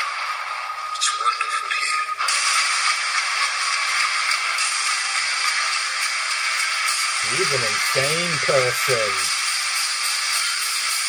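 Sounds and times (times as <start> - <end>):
steady hiss: 3.9 - 11.0
man speaking: 7.2 - 9.3.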